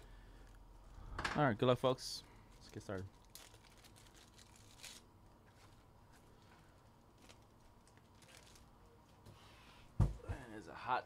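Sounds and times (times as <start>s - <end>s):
faint steady hum: 0.0s - 11.0s
faint rustles and clicks: 2.4s - 9.6s.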